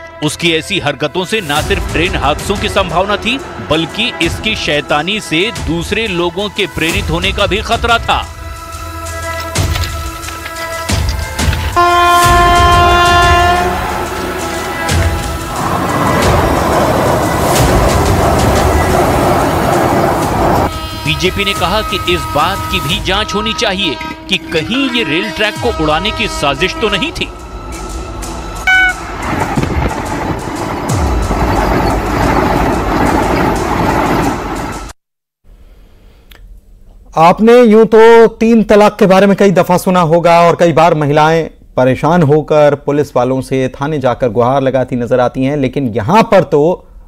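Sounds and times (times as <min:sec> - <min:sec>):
music: 0:00.0 - 0:35.0
train rumbling: 0:01.4 - 0:35.0
locomotive horn: 0:08.2 - 0:30.3.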